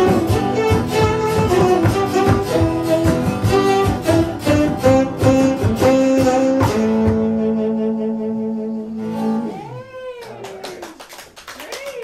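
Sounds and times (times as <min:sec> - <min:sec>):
audience clapping: 0:10.0 - 0:12.0.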